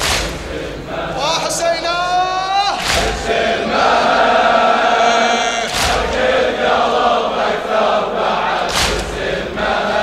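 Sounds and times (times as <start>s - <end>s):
crowd chanting a refrain: 0.0s - 1.6s, 2.7s - 10.0s
crowd beating chests: 2.8s - 6.7s
man holding a sung note: 3.6s - 6.3s.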